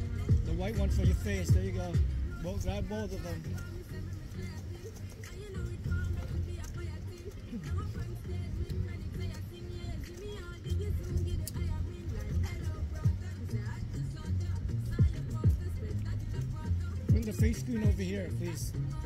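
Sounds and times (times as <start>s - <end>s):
background music with bass line: 0.0s - 19.0s.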